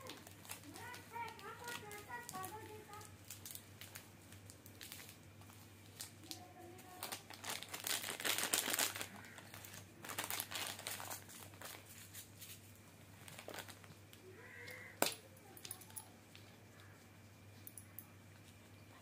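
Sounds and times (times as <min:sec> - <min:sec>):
plastic wrappers crinkling: 0:00.0 - 0:17.0.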